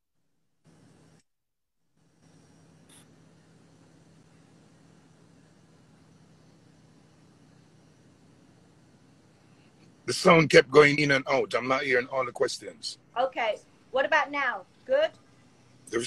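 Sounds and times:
faint hiss and low hum: 0:00.6 - 0:01.2, 0:02.0 - 0:16.0.

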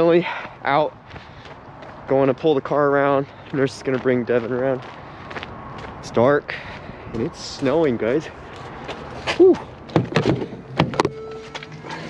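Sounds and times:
car door clicks and knocks: 0:09.9 - 0:11.1.

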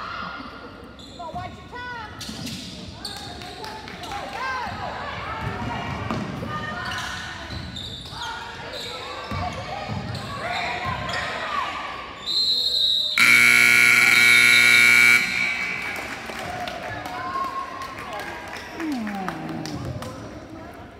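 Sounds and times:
scoreboard horn buzz: 0:13.2 - 0:16.4
crowd voices: 0:13.2 - 0:20.9.

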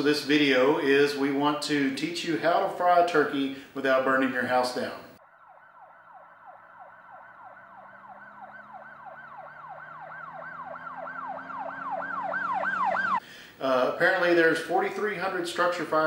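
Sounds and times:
siren yelping: 0:05.2 - 0:13.2.

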